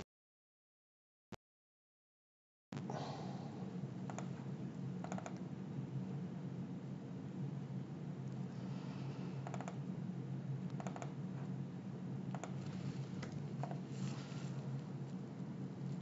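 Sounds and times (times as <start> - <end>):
faint low hum: 2.8 - 16.0
mouse and keyboard clicks: 4.1 - 4.3, 5.0 - 5.4, 9.4 - 9.8, 10.7 - 11.2, 12.3 - 13.8.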